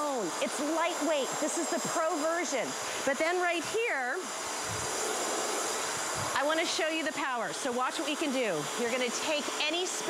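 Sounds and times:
carpet cleaner motor hiss: 0:00.0 - 0:10.0.

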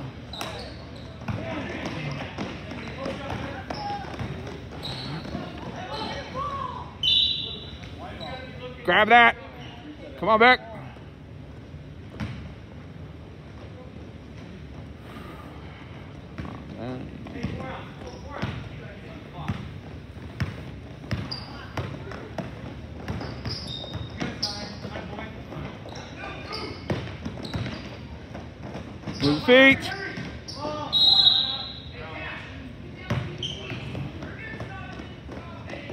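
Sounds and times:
voices in gym: 0:00.0 - 0:35.9.

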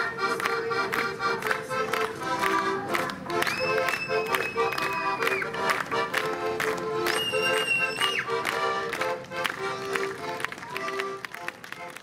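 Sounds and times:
accordion playing folk tune: 0:00.0 - 0:12.0
sharp taps keeping beat: 0:00.0 - 0:12.0.

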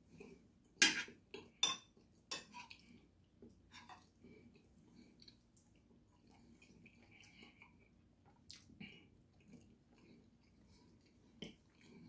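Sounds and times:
cutlery clinking on ceramic plate: 0:00.8 - 0:02.7.

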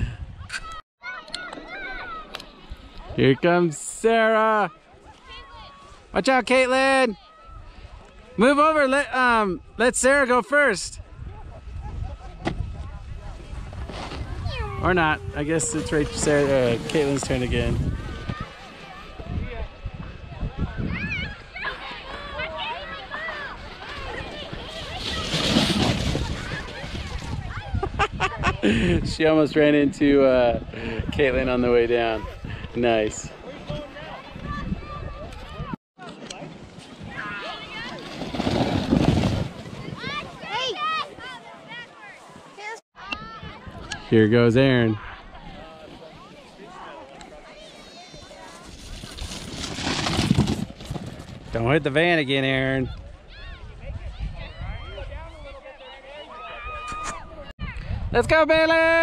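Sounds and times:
children calling and shouting: 0:00.4 - 0:03.7, 0:13.9 - 0:29.0, 0:33.5 - 0:36.3, 0:39.6 - 0:44.1, 0:44.9 - 0:49.0
sled sliding over snow: 0:11.5 - 0:20.5, 0:21.3 - 0:27.9, 0:35.5 - 0:42.8, 0:45.3 - 0:52.2.

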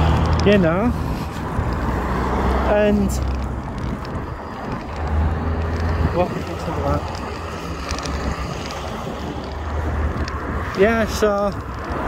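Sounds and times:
traffic rumble: 0:00.0 - 0:12.0
wind buffeting microphone: 0:00.0 - 0:12.0.

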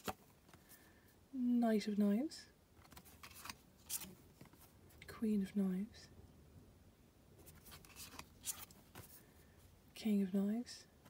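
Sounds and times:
cards rustling and sliding: 0:00.0 - 0:00.8, 0:02.8 - 0:04.7, 0:07.4 - 0:09.2.

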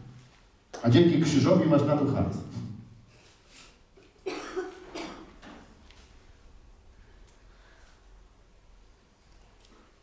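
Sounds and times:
person coughing: 0:04.1 - 0:05.4.

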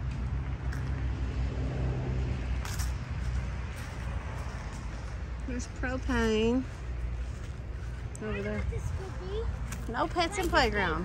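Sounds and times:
highway traffic drone: 0:00.0 - 0:11.0.

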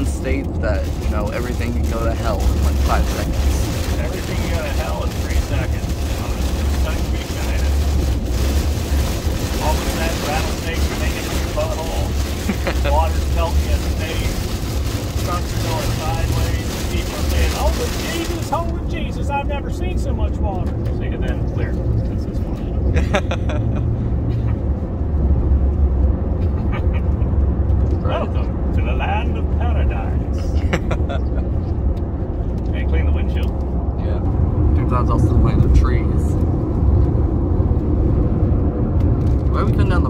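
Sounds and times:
road and tyre rumble in car: 0:00.0 - 0:40.0.

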